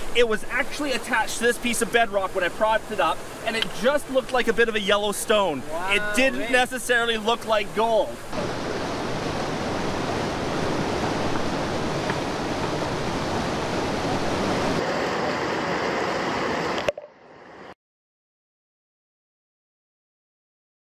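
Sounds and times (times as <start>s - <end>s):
fast-running water rushing: 0.0s - 14.8s.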